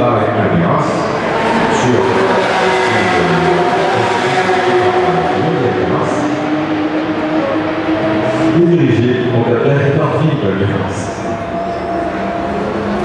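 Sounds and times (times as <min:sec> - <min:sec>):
race car engines running: 0:00.0 - 0:13.0.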